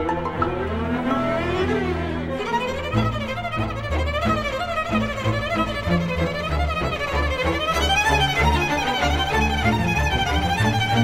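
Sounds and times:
low cello and bass notes: 0:00.0 - 0:11.0
wavering violin melody: 0:00.0 - 0:11.0.

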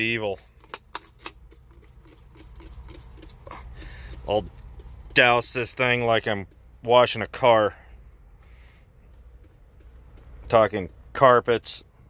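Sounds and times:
low steady hum: 0:00.0 - 0:12.0
spray bottle spritzes: 0:00.5 - 0:05.2.

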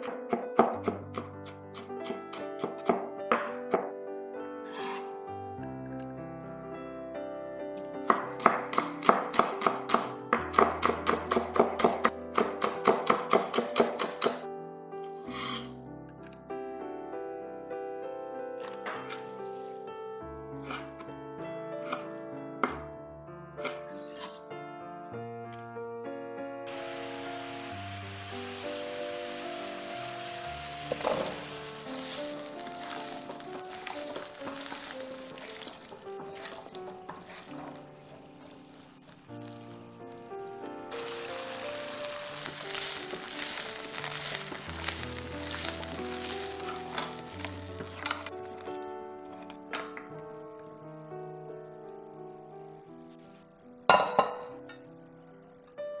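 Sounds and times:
background music: 0:00.0 - 0:56.0
vegetables sizzling in oil: 0:26.7 - 0:48.7.

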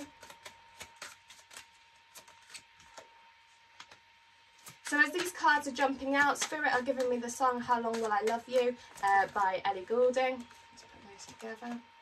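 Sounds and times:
cards being shuffled: 0:00.0 - 0:11.8.

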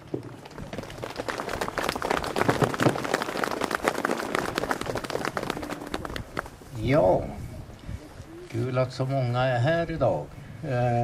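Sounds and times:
crowd applauding: 0:00.2 - 0:06.5.

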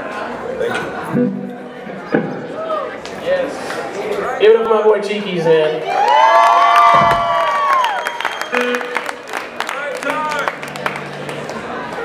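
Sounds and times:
audience shouts: 0:05.8 - 0:08.7
audience whooping: 0:05.8 - 0:09.4
scattered clapping: 0:06.7 - 0:12.0.

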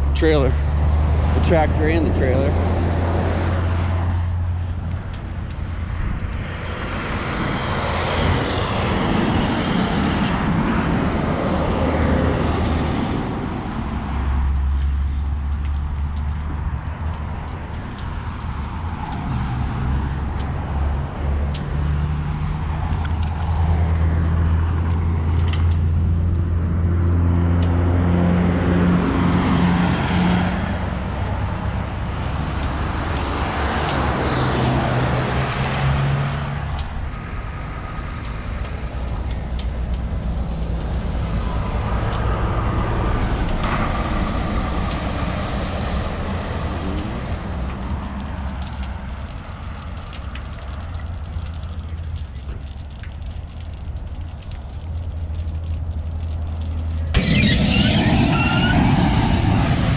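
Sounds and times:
vehicle engines idling: 0:00.0 - 0:06.2, 0:30.6 - 0:59.9
highway traffic passing: 0:00.0 - 0:59.9.

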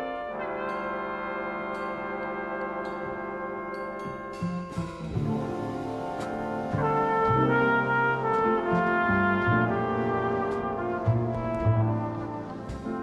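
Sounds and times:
flugelhorn notes: 0:00.0 - 0:13.0
jazz big band: 0:00.0 - 0:13.0
light cymbal strokes: 0:00.7 - 0:08.7
bass line: 0:04.4 - 0:13.0.

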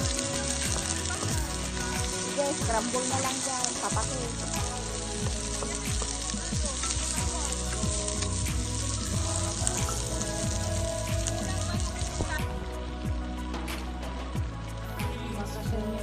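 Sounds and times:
food sizzling in hot oil: 0:00.0 - 0:16.0
wooden spatula stirring: 0:00.4 - 0:10.5.

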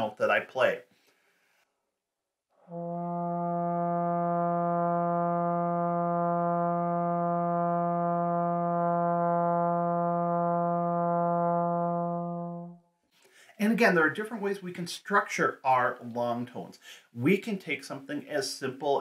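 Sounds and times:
trombone long tone: 0:02.6 - 0:12.8.

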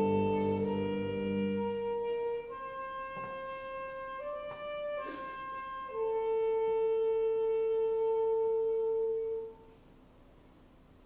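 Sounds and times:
wind instrument note held: 0:00.0 - 0:09.9.

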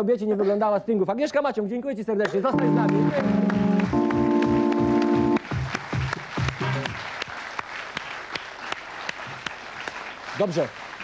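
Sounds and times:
studio audience applauding: 0:02.3 - 0:11.0
kick-drum beat: 0:02.6 - 0:07.0.

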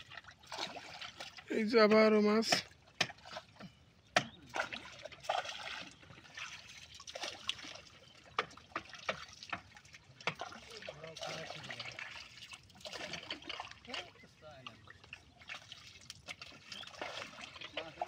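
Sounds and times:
water trickling and splashing: 0:00.0 - 0:18.0.

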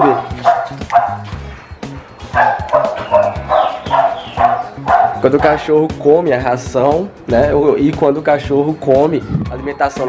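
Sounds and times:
dog yipping and barking: 0:00.0 - 0:01.4, 0:02.2 - 0:05.7.

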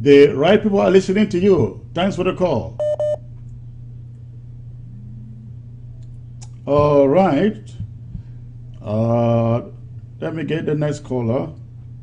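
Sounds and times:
steady low hum: 0:00.0 - 0:12.0
electronic phone beep: 0:02.8 - 0:03.2.

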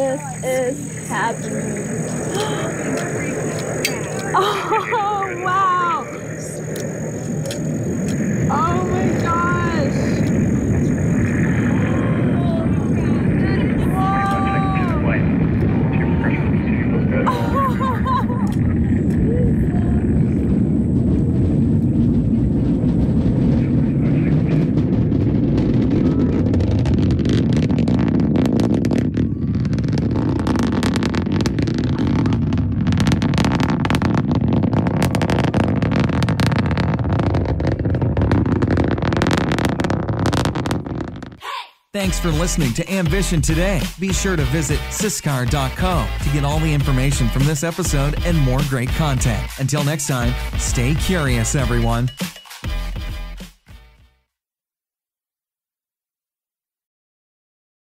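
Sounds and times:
rocket engines roaring: 0:00.0 - 0:41.4, 0:42.0 - 0:53.4
people whooping and shouting: 0:13.8 - 0:15.1, 0:29.1 - 0:30.2.

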